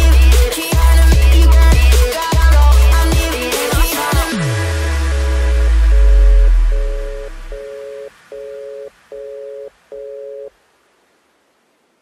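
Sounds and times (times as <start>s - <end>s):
deep sub-bass note: 4.3s - 7.6s
two-note synth tone beeping: 4.4s - 10.5s.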